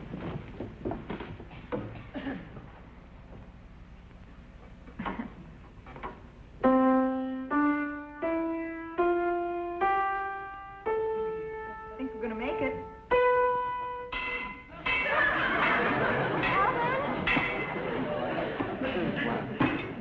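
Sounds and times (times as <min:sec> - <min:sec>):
piano notes rising scale: 0:06.6 - 0:18.7.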